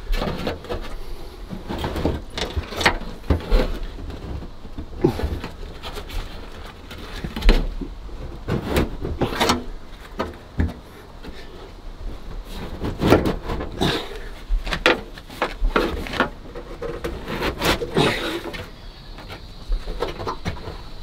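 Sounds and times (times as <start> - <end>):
metal panel knocking and scraping: 12.5 - 14.0.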